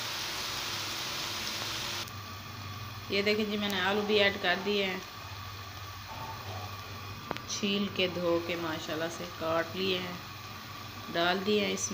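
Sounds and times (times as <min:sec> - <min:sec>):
vegetables sizzling in hot fat: 0:00.0 - 0:11.9.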